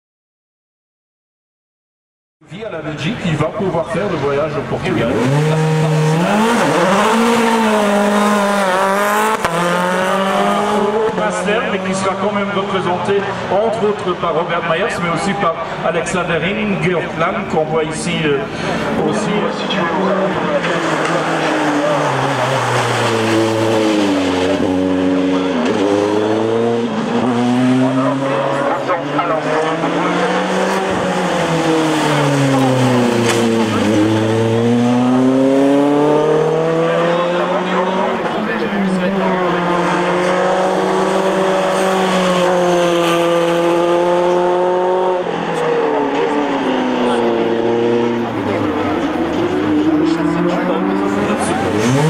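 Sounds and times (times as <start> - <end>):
race car engine revving: 3.0 - 52.0.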